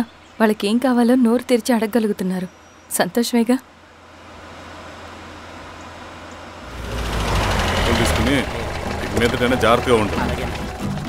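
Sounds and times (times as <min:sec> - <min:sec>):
car engine running: 0:06.6 - 0:11.0.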